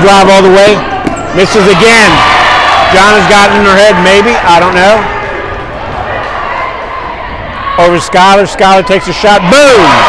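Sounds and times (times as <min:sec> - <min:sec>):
basketball court noise: 0:00.0 - 0:10.0
crowd din: 0:00.0 - 0:10.0.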